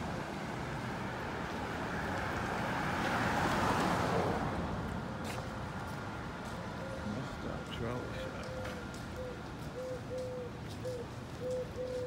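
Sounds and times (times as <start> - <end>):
dove cooing: 8.4 - 12.0.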